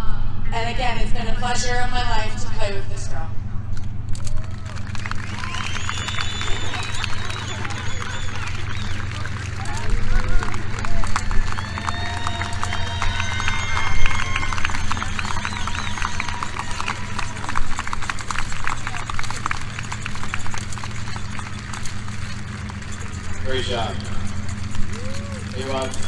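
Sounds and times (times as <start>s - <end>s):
steady low hum: 0.0s - 26.0s
crowd applauding: 4.1s - 26.0s
cheers and shouts: 4.3s - 21.0s, 24.8s - 26.0s.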